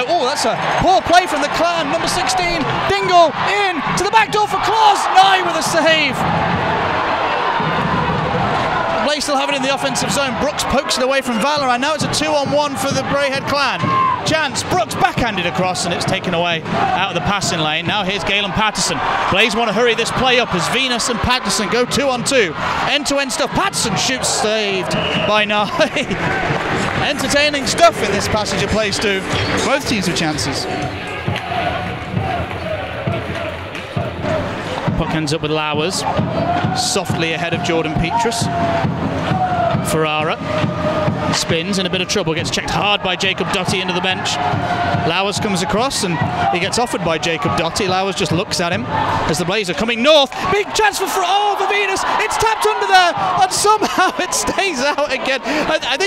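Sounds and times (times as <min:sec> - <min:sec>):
arena crowd voices: 0:00.0 - 0:56.0.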